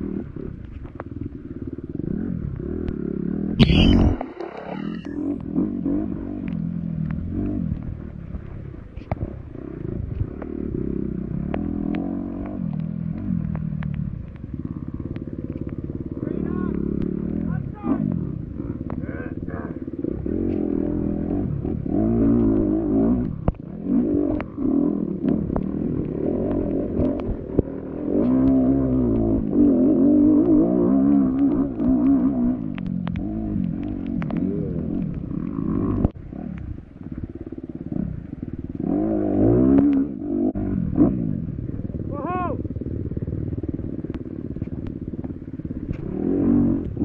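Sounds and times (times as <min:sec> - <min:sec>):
dirt bike engine revving: 0:09.2 - 0:13.8, 0:14.5 - 0:47.0
knocks and clatter from bike: 0:10.0 - 0:19.1.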